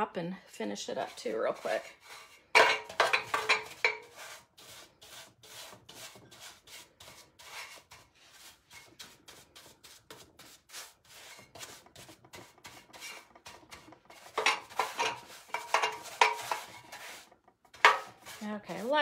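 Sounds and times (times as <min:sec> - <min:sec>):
paintbrush swishes on metal: 0:00.8 - 0:19.0.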